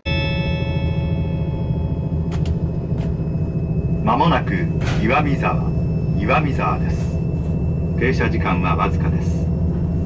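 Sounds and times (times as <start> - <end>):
high ringing tone: 0.0 - 10.0
train engine and wheels rumbling: 0.1 - 10.0.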